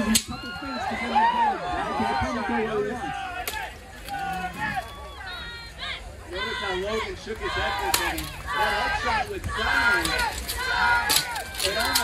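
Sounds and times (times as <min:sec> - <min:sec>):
crowd calling out: 0:00.0 - 0:12.0
steel swords clashing: 0:09.7 - 0:12.0.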